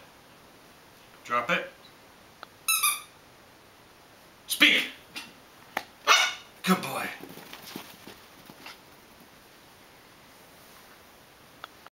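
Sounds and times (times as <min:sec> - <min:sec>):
puppy barking: 0:06.0 - 0:06.5.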